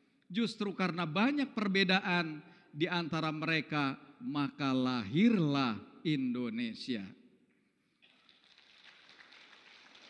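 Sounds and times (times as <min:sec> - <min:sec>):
faint audience applause: 0:08.0 - 0:10.0.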